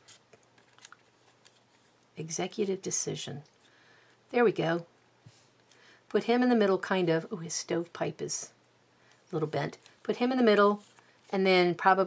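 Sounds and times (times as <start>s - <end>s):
paper rustling: 0.0s - 2.0s, 9.7s - 11.4s.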